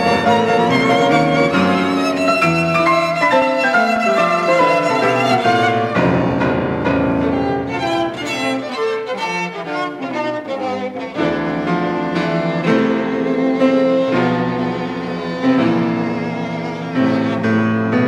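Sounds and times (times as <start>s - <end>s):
piano chords: 0.0s - 18.0s
violin and cello lines: 0.0s - 18.0s.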